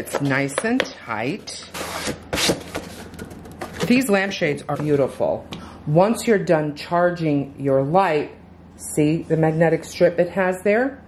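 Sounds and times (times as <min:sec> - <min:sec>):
woman speaking: 0:00.0 - 0:01.8, 0:03.8 - 0:11.0.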